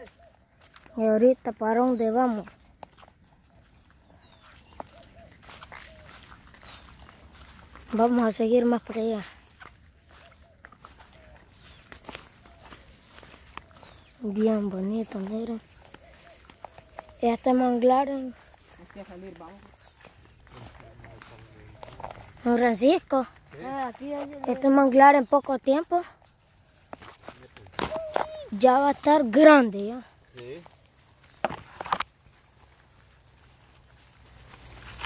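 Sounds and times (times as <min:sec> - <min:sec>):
footsteps through dry grass: 0:00.0 - 0:35.0
twigs and branches crackling: 0:00.0 - 0:35.0.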